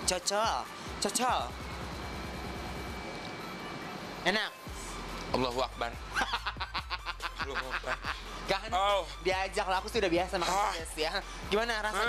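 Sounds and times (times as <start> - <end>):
faint high whine: 0.6 - 5.9.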